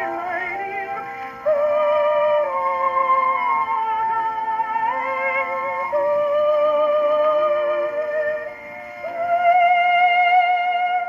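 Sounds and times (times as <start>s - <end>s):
phonograph record of woman singing: 0.0s - 11.0s.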